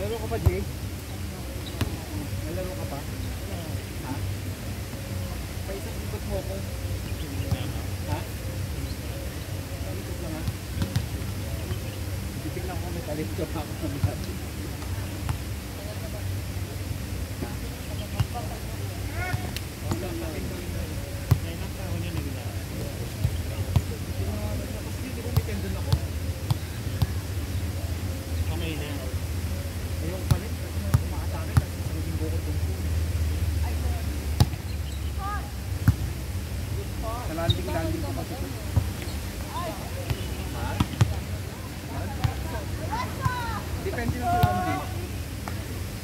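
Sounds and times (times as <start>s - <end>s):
players calling out: 36.8s - 45.4s.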